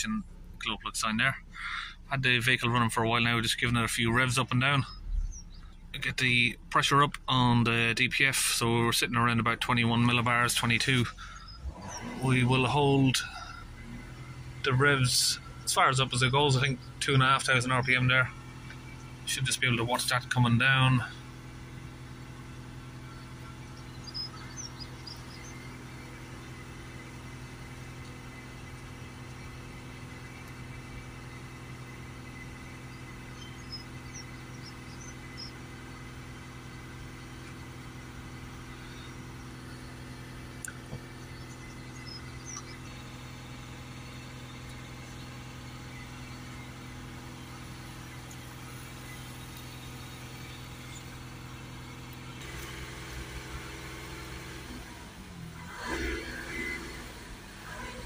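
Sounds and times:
diesel engine running steadily: 0.0 - 58.0.

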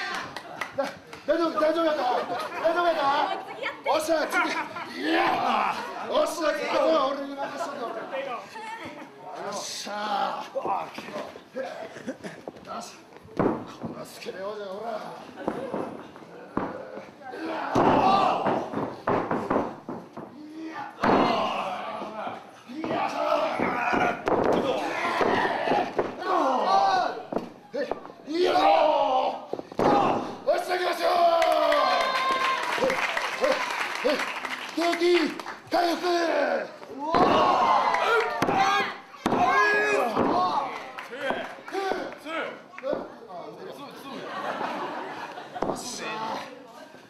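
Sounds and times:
voices shouting: 20.8 - 27.2.

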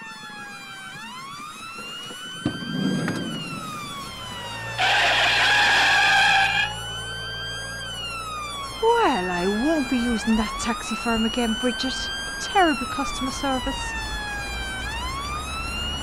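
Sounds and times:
siren wailing: 0.0 - 16.0.

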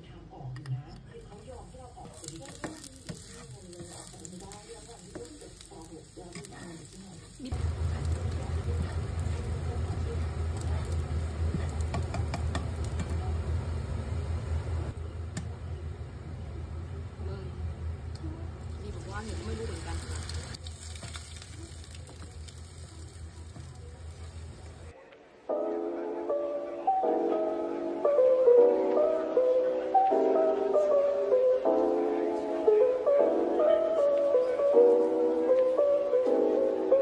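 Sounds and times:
garlic sizzling in oil: 1.2 - 14.9, 18.6 - 24.9
spatula stirring: 1.3 - 13.2, 18.7 - 24.9
low hum: 7.5 - 20.6.

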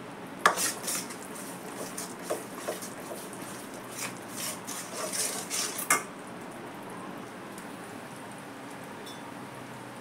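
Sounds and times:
spatula scraping metal pan: 0.5 - 6.0.

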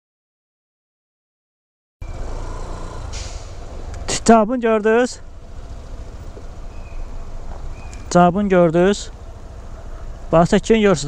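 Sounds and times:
scooter engine rumble: 2.0 - 4.3, 5.2 - 8.2.

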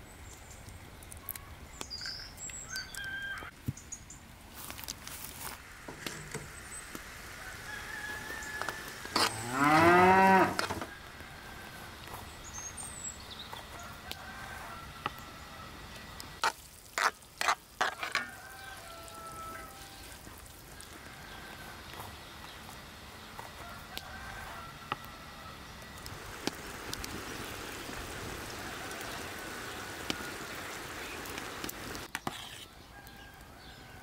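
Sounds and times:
cow mooing: 9.2 - 10.8.

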